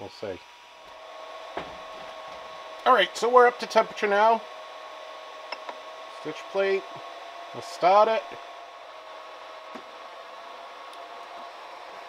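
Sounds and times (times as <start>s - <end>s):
fan hiss: 0.0s - 12.0s.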